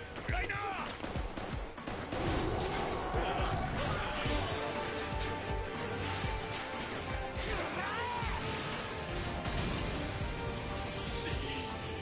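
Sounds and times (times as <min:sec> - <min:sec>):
dramatic orchestral score: 0:00.0 - 0:12.0.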